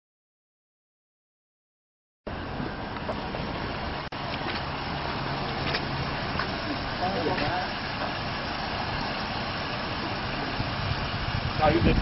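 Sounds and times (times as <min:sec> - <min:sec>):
car engine idling: 0:02.3 - 0:12.0.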